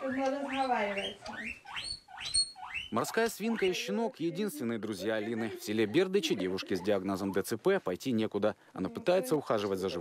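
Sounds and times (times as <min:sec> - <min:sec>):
guinea pig squealing: 0:00.0 - 0:04.1.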